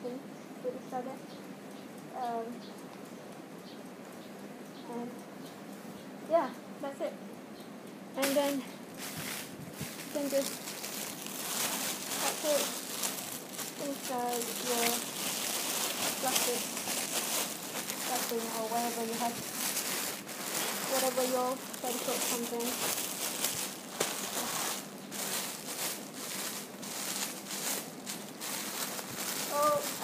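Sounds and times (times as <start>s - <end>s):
plastic bag crinkling: 8.2s - 30.0s
cloth rustling: 8.3s - 30.0s.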